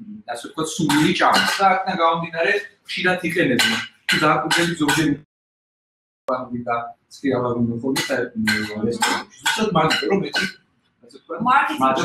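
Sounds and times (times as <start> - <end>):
person speaking: 0.0 - 5.2, 6.3 - 10.5, 11.1 - 12.0.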